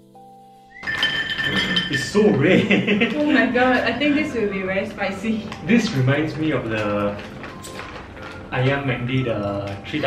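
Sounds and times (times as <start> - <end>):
soft plucked background music: 1.6 - 10.0
plastic bag crinkling: 5.3 - 10.0.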